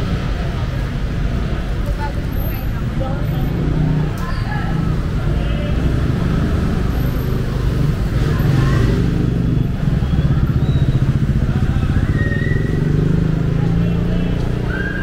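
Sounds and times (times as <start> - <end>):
idling car traffic: 0.0 - 15.0
motorcycles passing at low speed: 2.9 - 15.0.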